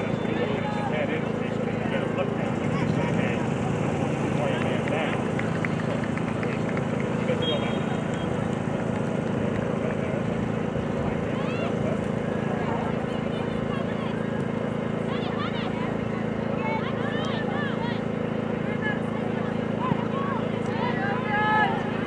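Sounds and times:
distant shouting and chatter: 0:00.0 - 0:22.0.

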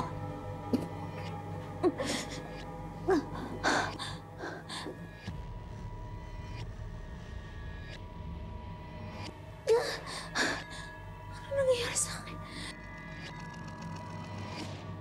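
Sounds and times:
low musical drone: 0:00.0 - 0:15.0.

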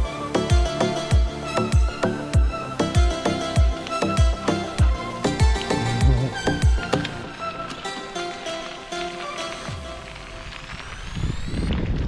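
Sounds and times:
background music with held notes: 0:00.0 - 0:10.9.

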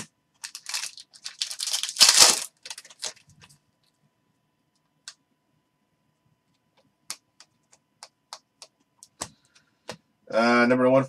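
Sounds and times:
plastic wrapper tearing and crinkling: 0:00.0 - 0:03.5.

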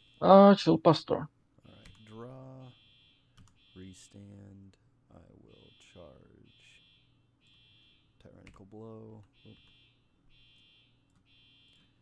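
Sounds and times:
faint person humming: 0:01.7 - 0:02.7, 0:03.9 - 0:05.6
keyboard or mouse clicks: 0:08.4 - 0:09.8.

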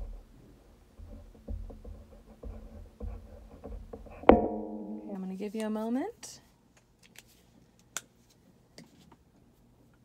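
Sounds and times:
steady low tone: 0:04.3 - 0:05.5.

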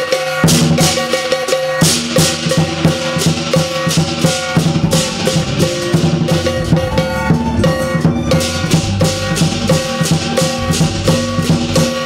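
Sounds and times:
hand cymbals crashing: 0:00.0 - 0:12.0
large drum beaten fast: 0:00.4 - 0:12.0
gong ringing: 0:03.9 - 0:11.6.

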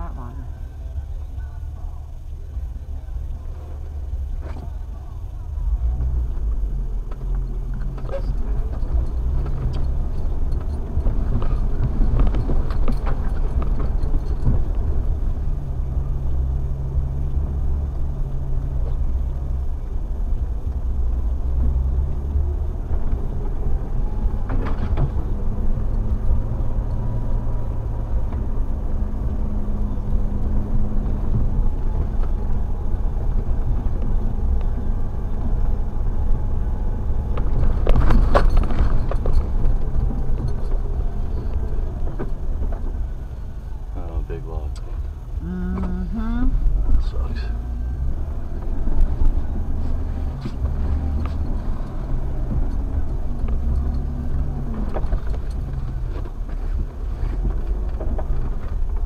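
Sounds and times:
vehicle engine hum from cab: 0:00.0 - 0:59.0
body knocks and rattles: 0:07.0 - 0:15.6, 0:21.5 - 0:43.3, 0:47.8 - 0:59.0.

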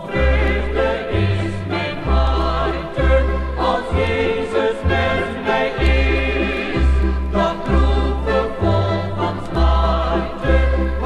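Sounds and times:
choir singing a hymn: 0:00.0 - 0:11.0
instrumental accompaniment: 0:00.0 - 0:11.0.

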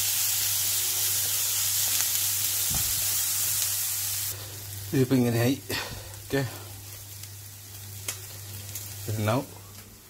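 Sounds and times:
vegetables sizzling: 0:00.0 - 0:10.0.

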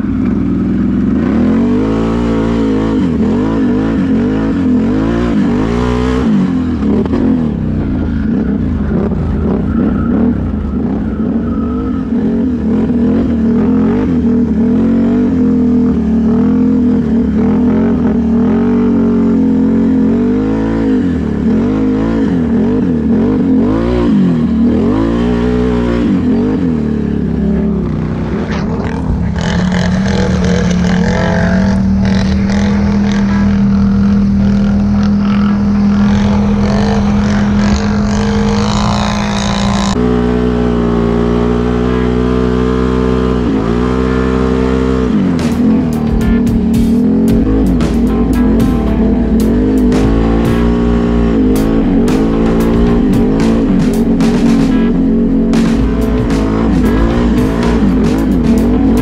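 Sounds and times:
atv engine revving: 0:00.0 - 0:59.0.

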